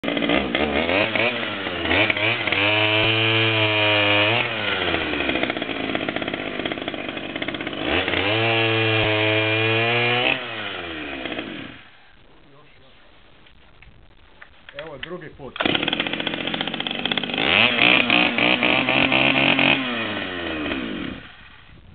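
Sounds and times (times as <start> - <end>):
chainsaw revving: 0.0 - 12.0, 15.5 - 21.7.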